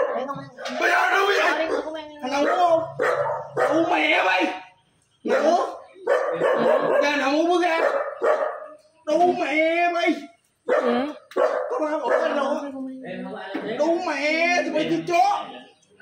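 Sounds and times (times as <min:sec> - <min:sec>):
man yelling: 0:00.6 - 0:02.8.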